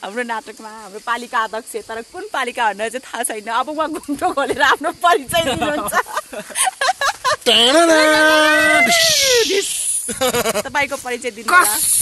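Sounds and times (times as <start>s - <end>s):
young people talking: 0.0s - 12.0s
people laughing: 4.3s - 10.8s
short sharp hiss: 8.9s - 10.2s.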